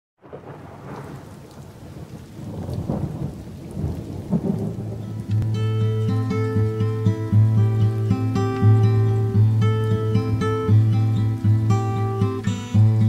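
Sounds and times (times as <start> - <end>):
low rumbling thunder: 0.2 - 5.6
rain: 0.2 - 13.0
acoustic guitar notes: 4.9 - 13.0.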